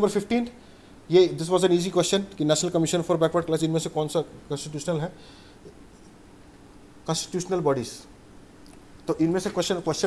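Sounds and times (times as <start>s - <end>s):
man speaking: 0.0s - 5.2s, 7.0s - 8.1s, 9.0s - 10.0s
faint room hiss: 0.0s - 10.0s
soft high hiss: 0.0s - 10.0s.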